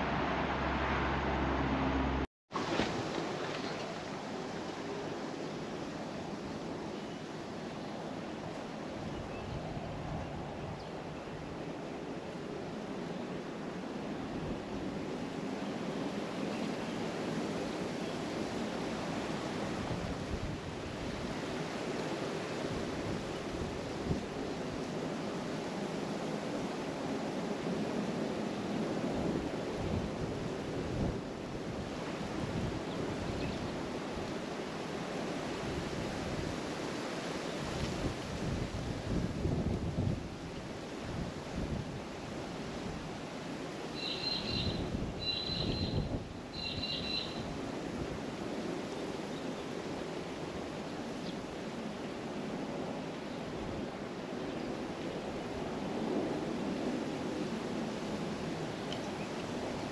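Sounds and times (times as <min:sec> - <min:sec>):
wind buffeting microphone: 0:37.6 - 0:43.6, 0:44.4 - 0:48.9
short high-pitched calls: 0:44.0 - 0:47.5.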